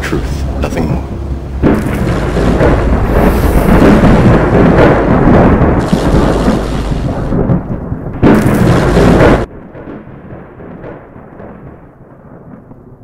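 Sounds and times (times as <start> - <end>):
thunder rumble with crackle: 0.0 - 13.0.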